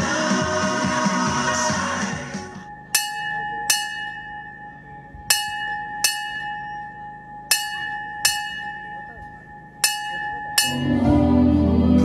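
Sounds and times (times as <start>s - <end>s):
brass bell struck by hand: 2.9s - 11.1s.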